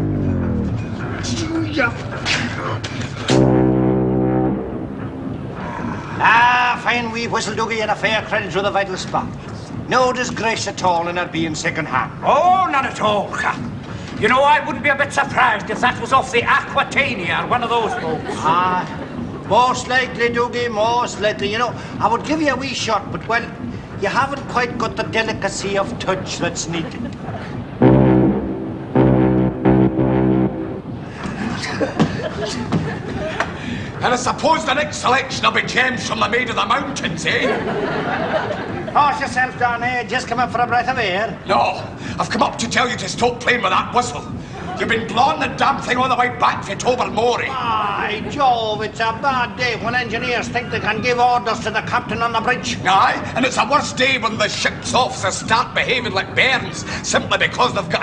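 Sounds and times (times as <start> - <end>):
deep steam whistle blast: 3.3 - 6.2.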